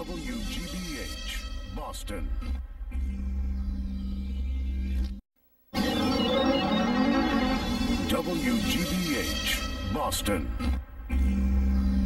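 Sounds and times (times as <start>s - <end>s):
low hum: 2.2s - 12.0s
low synthesizer drone: 5.7s - 12.0s.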